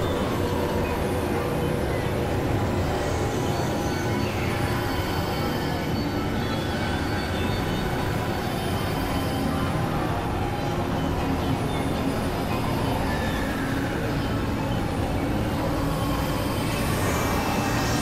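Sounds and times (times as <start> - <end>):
experimental electronic drone: 0.0 - 18.0.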